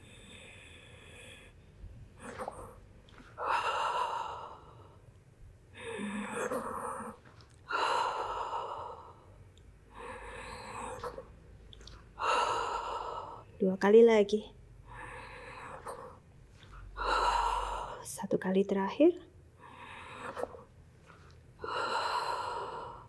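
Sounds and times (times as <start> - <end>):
woman breathing heavily: 0.0 - 13.6, 14.7 - 18.1, 19.3 - 23.0.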